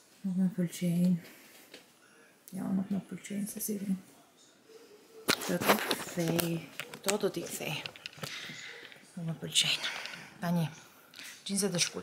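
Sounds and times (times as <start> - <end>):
woman's voice: 0.2 - 1.4, 2.5 - 4.0, 5.4 - 7.9, 9.2 - 10.8, 11.4 - 12.0.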